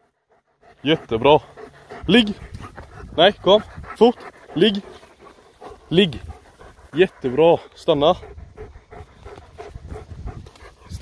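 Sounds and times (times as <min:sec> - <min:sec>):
dog panting rapidly: 0:00.0 - 0:11.0.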